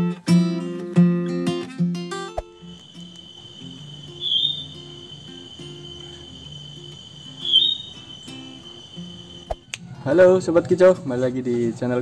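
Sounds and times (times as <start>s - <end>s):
high insect-like trill: 2.4s - 9.7s
bird high chirps: 2.6s - 9.7s.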